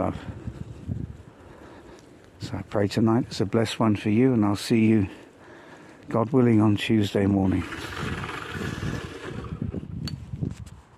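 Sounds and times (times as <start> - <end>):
wind rushing over microphone: 0.0 - 1.5, 6.8 - 10.9.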